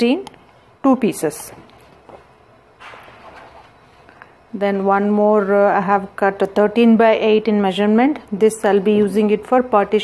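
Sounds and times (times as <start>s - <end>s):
fabric rustling: 1.5s - 5.8s.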